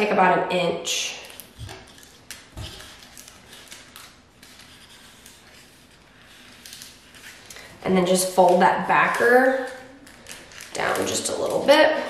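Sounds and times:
plastic film crackling: 0:01.2 - 0:12.0.

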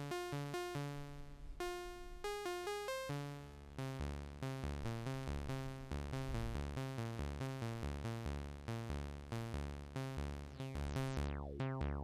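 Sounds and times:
stepped synth note sequence: 0:01.6 - 0:12.0
pulsing bass: 0:03.2 - 0:12.0.

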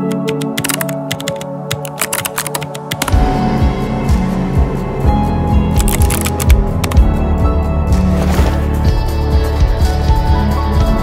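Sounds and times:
mechanical keyboard typing: 0:00.0 - 0:03.2, 0:05.8 - 0:07.0
background music: 0:00.0 - 0:11.0.

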